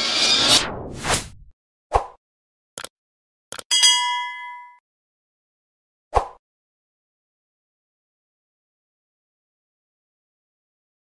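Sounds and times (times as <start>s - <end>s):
notification bell ding: 3.7s - 4.8s.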